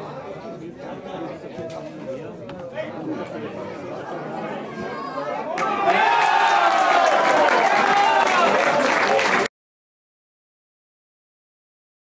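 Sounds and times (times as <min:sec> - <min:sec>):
spectators chattering: 0:00.0 - 0:09.5
crowd shouting and cheering: 0:04.5 - 0:09.5.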